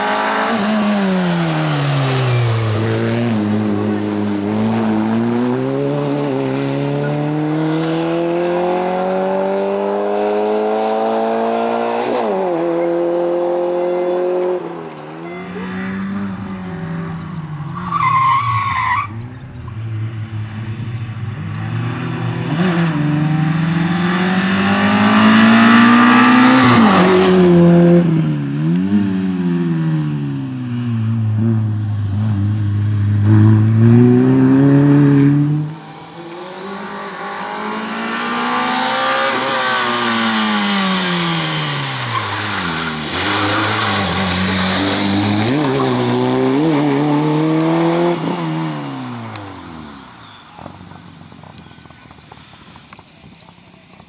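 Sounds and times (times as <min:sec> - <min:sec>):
rally car engine revving: 0:00.0 - 0:51.1.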